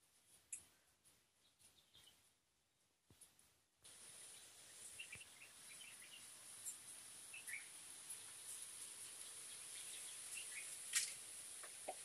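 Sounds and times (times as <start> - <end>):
bird chirps: 1.4 - 2.3, 4.1 - 10.8.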